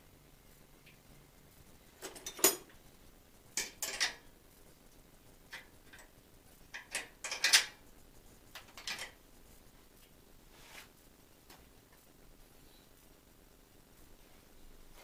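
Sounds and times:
metallic clinks and rattles: 0:03.6 - 0:04.2.

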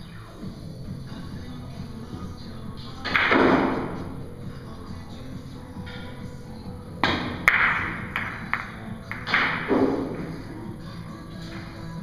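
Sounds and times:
billiard balls cracking together: 0:03.0 - 0:04.0, 0:07.0 - 0:10.6
cue knocking cue ball: 0:03.1 - 0:04.1, 0:07.0 - 0:10.4
balls hitting cushions: 0:07.0 - 0:10.5.

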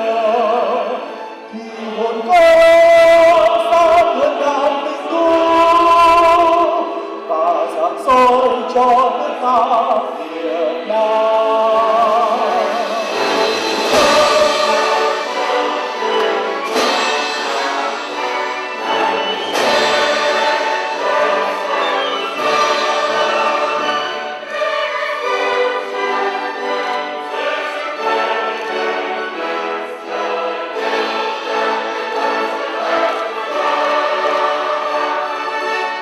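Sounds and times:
choir singing with vibrato: 0:00.0 - 0:36.0
orchestra of strings and harp: 0:00.0 - 0:36.0.

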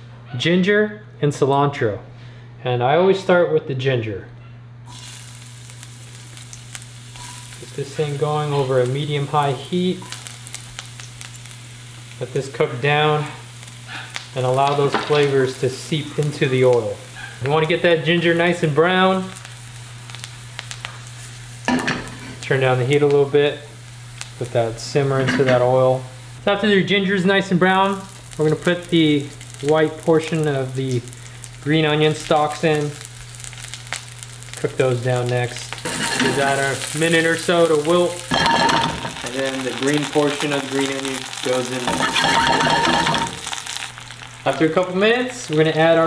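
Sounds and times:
crackles and pops of frying: 0:04.9 - 0:46.0
ginger sizzling in hot oil: 0:04.9 - 0:46.0.

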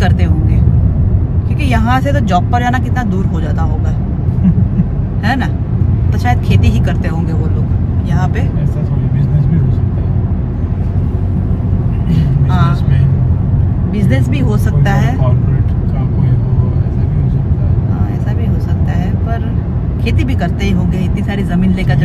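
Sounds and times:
car road and engine rumble: 0:00.0 - 0:22.0.

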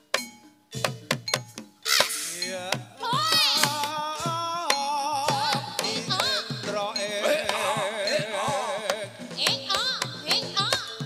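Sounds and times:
drum strikes: 0:00.0 - 0:11.0
gamelan music: 0:00.0 - 0:11.0.

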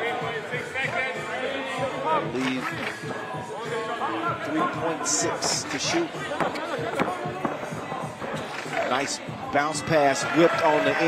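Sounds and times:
background music: 0:00.0 - 0:11.0
voices: 0:00.0 - 0:11.0.

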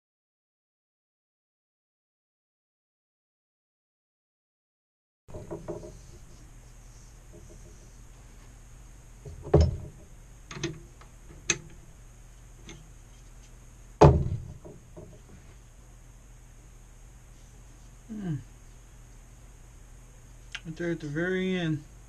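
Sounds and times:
low steady hum: 0:05.3 - 0:22.0.

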